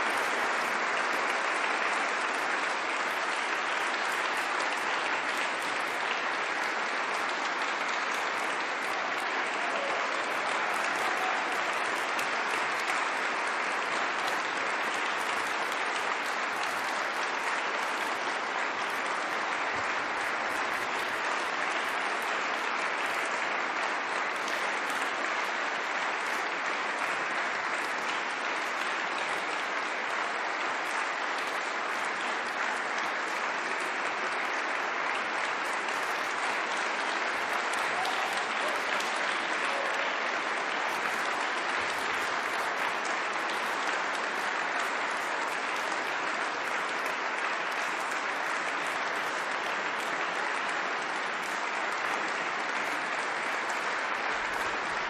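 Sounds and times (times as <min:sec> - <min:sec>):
audience applauding: 0:00.0 - 0:55.0.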